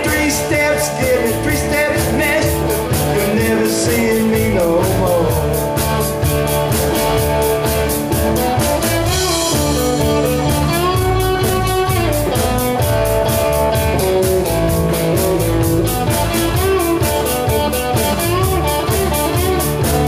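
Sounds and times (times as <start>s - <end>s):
bass guitar: 0.0s - 20.0s
drum kit cymbal beat: 0.0s - 20.0s
electric guitar bending notes: 0.0s - 20.0s.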